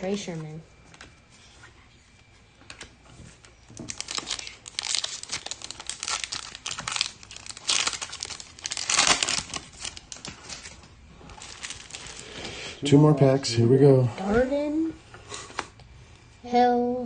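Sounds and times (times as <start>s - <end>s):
wrapper tearing and crinkling: 3.8s - 12.3s.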